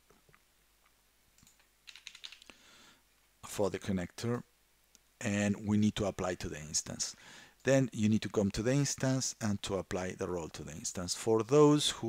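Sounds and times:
typing on computer keyboard: 1.4s - 2.5s.

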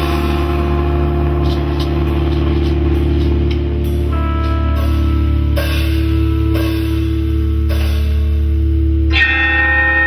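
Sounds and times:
electric guitar and bass chord drone: 0.0s - 10.0s
higher steady tone: 0.0s - 10.0s.

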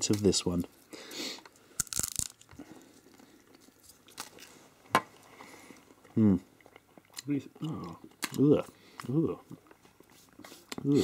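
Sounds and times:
chewing: 1.4s - 4.6s, 5.2s - 11.0s
crunching wafer bar: 1.8s - 2.7s.

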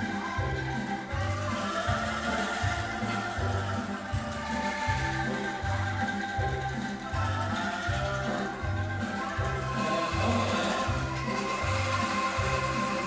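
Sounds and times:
bamboo rattles shaken in chords: 0.0s - 13.0s.

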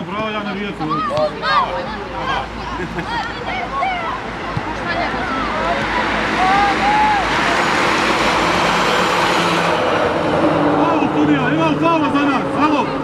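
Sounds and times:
young players shouting: 0.5s - 8.6s
loud rushing noise: 3.5s - 13.0s.

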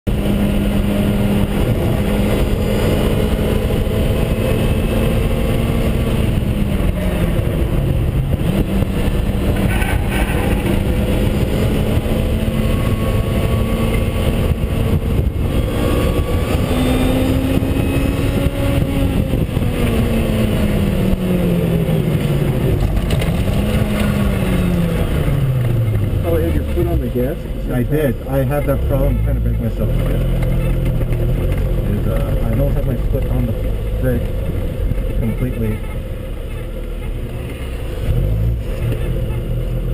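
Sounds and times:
car engine at speed: 0.0s - 39.9s
tyre and wind noise: 0.1s - 27.4s.

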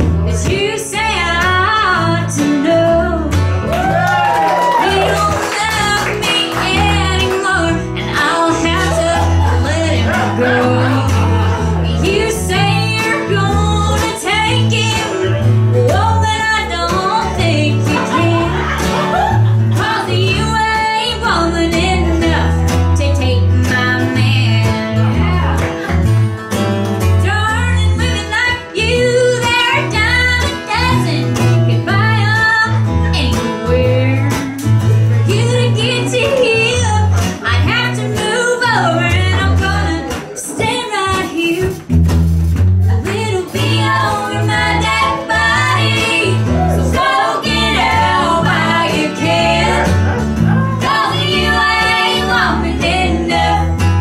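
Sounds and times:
bass line: 0.0s - 54.0s
mandolin: 0.0s - 54.0s
young woman singing: 0.3s - 3.5s, 4.4s - 18.8s, 19.7s - 25.2s, 27.2s - 34.6s, 35.2s - 41.8s, 42.9s - 50.1s, 50.8s - 54.0s
strummed acoustic guitar: 4.8s - 54.0s.

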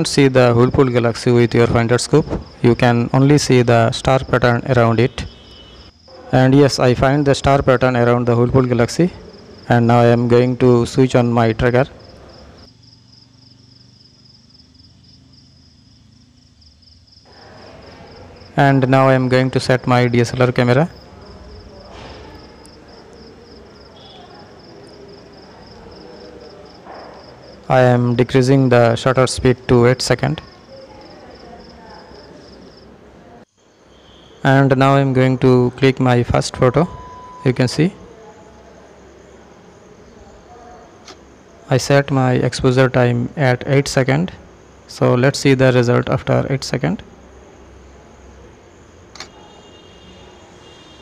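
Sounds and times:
crickets chirping: 0.0s - 51.0s
faint high tones: 36.4s - 38.8s.

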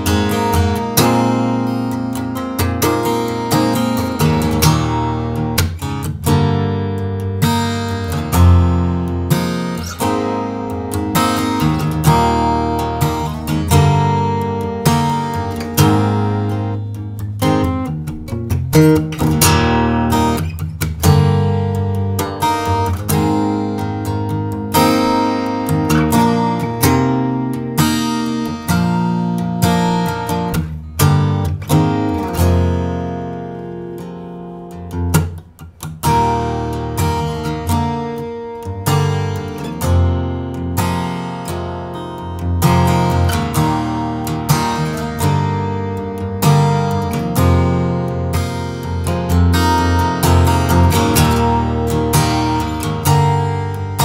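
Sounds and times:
acoustic guitar strummed: 0.0s - 54.0s.

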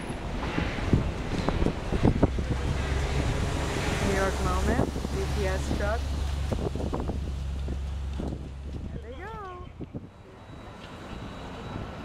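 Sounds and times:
wind on microphone: 0.0s - 10.3s
city street noise: 0.0s - 12.0s.

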